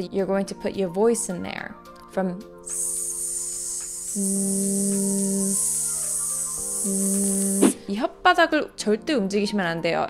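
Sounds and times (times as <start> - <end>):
soft background music: 0.0 - 10.0
woman holding buzzing zzz sound: 2.7 - 7.8.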